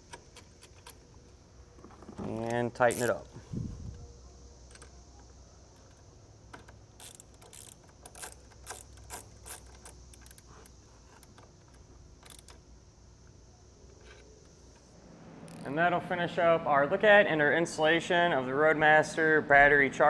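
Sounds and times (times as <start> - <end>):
ratchet wrench clicking: 2.1 - 3.3, 5.8 - 12.6, 15.5 - 15.7.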